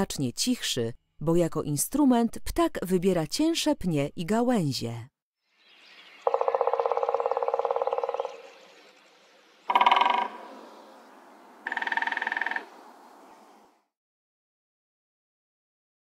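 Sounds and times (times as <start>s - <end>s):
woodpecker drumming on wood: 6.2s - 8.5s, 9.6s - 13.3s.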